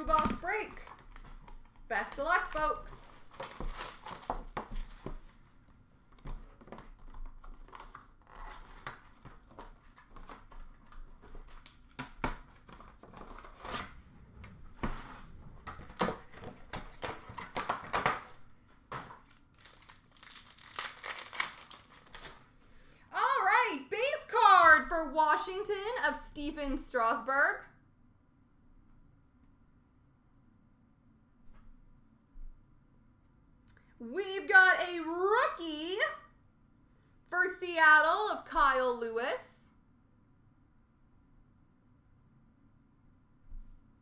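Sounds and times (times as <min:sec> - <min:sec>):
plastic wrapping crinkling and tearing: 0:00.0 - 0:05.3, 0:06.2 - 0:14.0, 0:15.8 - 0:18.4, 0:19.0 - 0:22.6.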